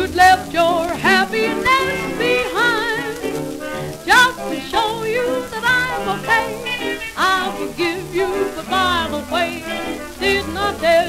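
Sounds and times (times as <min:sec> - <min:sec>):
jazz band on gramophone record: 0:00.0 - 0:11.0.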